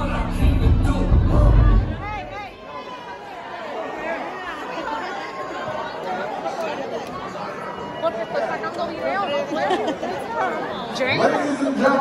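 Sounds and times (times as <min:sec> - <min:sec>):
loud music: 0:00.0 - 0:02.5
crowd chatter in a hall: 0:00.0 - 0:12.0.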